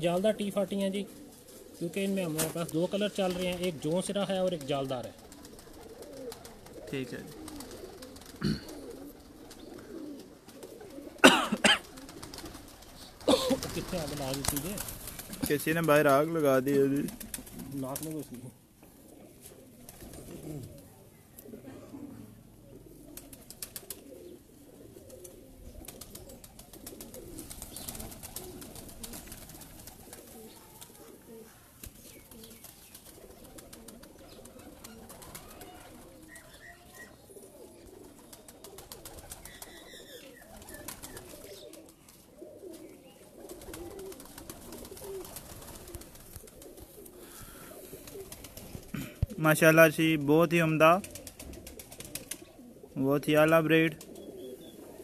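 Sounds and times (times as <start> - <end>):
pigeons cooing: 0.0 - 55.0
short loud pigeon calls: 1.0 - 16.1, 16.8 - 55.0.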